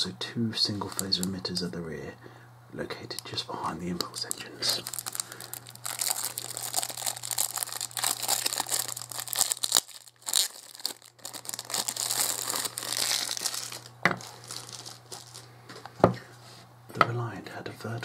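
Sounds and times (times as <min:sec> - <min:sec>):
steady low hum: 0:00.0 - 0:18.0
plastic bag crinkling: 0:00.8 - 0:01.4, 0:03.9 - 0:16.0.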